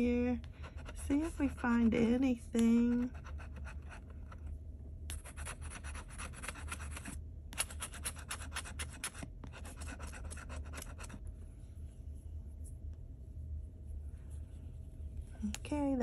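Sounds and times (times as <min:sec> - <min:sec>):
metal tool scraping scratch ticket: 0:05.1 - 0:11.2.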